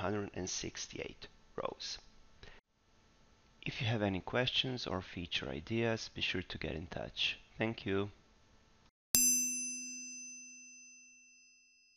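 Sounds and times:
bell-like ding ringing: 0:09.2 - 0:11.9.

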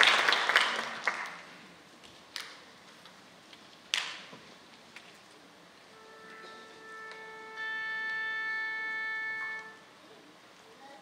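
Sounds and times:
orchestra holding tuning note: 0:05.9 - 0:10.2.

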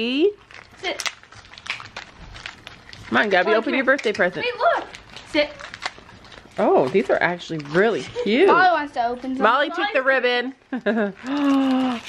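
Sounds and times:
package rustling: 0:00.4 - 0:08.4, 0:10.8 - 0:12.0.

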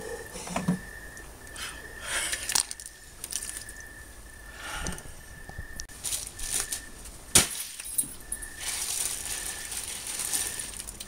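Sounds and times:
rustling: 0:05.8 - 0:11.0.

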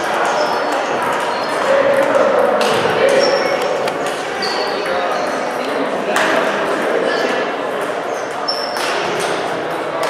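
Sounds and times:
voices in a large hall: 0:00.0 - 0:10.0.

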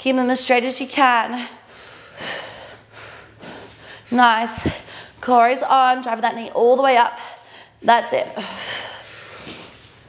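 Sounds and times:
woman breathing hard: 0:01.5 - 0:05.2, 0:07.2 - 0:07.8, 0:08.4 - 0:09.9.

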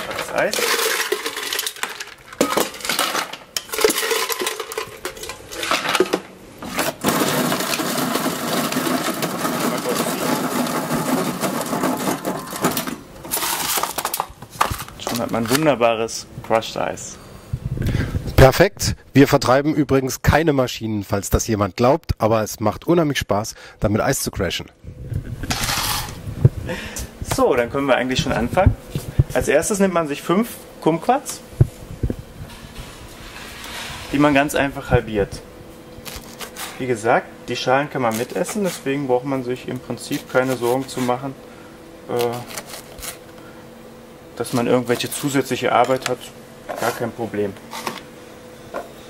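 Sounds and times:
ice cubes clinking: 0:00.0 - 0:05.8, 0:07.0 - 0:12.8
ice crusher grinding: 0:00.0 - 0:14.8, 0:25.5 - 0:26.2, 0:42.2 - 0:43.3.

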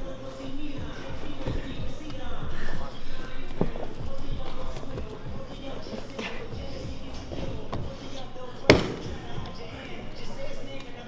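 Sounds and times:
background voices: 0:00.0 - 0:11.0
body hitting a padded mat: 0:08.7 - 0:09.4.

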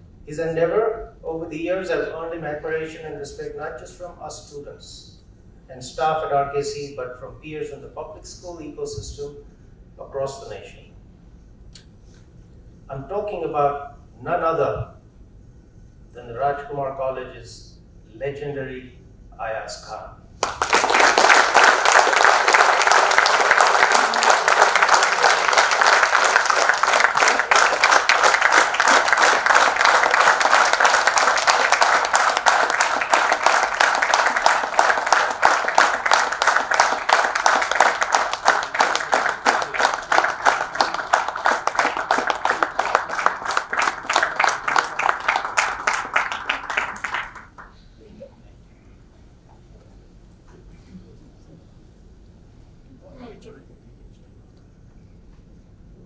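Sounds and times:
audience applauding: 0:20.4 - 0:47.8.

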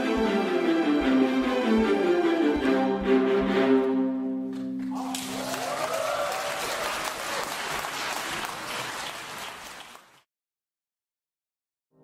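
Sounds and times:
viola ensemble chord: 0:00.0 - 0:04.5
audience applause: 0:04.9 - 0:10.3.

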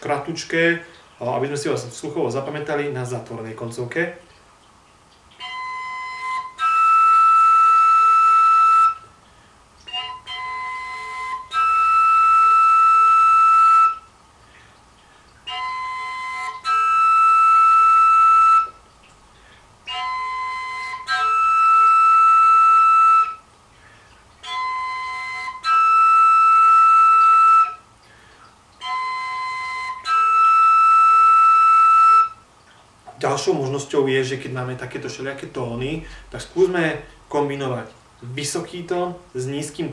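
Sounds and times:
overtone flute playing: 0:05.4 - 0:09.1, 0:09.8 - 0:14.1, 0:15.4 - 0:18.8, 0:19.8 - 0:23.5, 0:24.4 - 0:27.9, 0:28.8 - 0:32.4.

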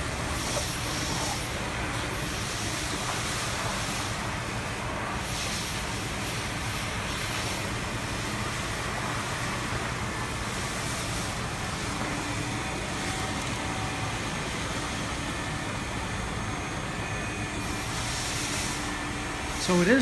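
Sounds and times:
faint steady whine: 0:00.0 - 0:20.0
industrial vacuum running: 0:00.0 - 0:20.0.

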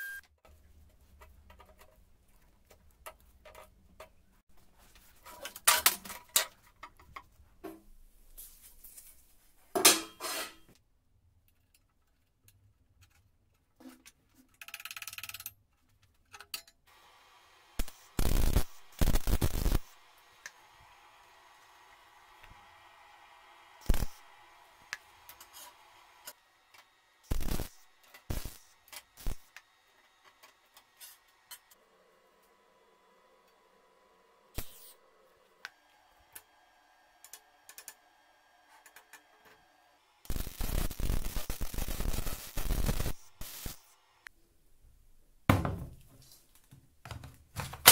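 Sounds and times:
welding arc hiss and crack: 0:16.9 - 0:31.8, 0:34.5 - 0:36.5, 0:40.2 - 0:44.3.

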